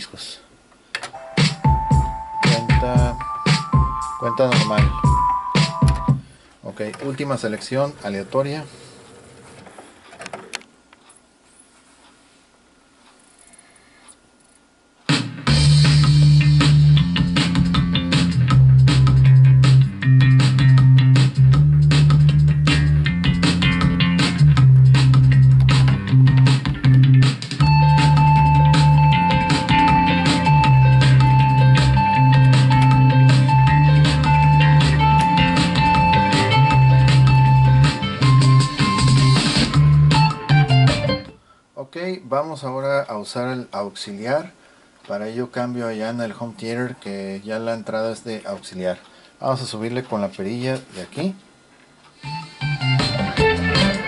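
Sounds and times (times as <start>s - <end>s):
man speaking: 0.0s - 0.5s, 2.4s - 3.2s, 4.2s - 5.1s, 6.6s - 8.9s, 41.8s - 51.4s
guitar music over speakers: 1.1s - 6.2s, 15.4s - 41.4s, 52.2s - 54.0s.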